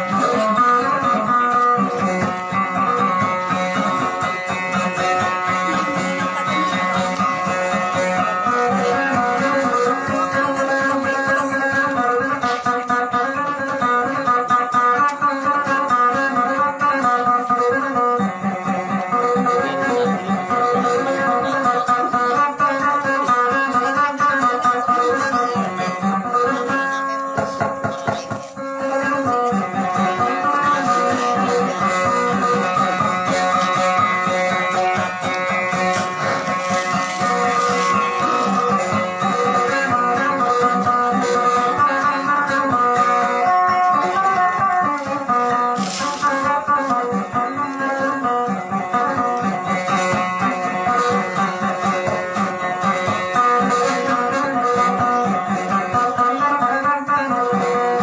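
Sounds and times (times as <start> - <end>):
plucked guitar melody: 0.0 - 58.0.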